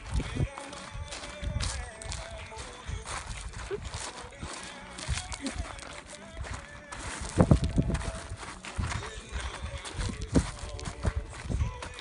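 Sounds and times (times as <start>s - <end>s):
wind rumbling on microphone: 0.0s - 4.1s, 6.4s - 11.9s
footsteps crunching on gravel: 0.0s - 12.0s.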